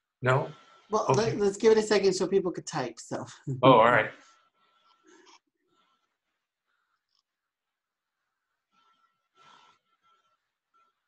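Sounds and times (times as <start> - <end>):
man speaking: 0.2 - 1.5, 3.2 - 4.1.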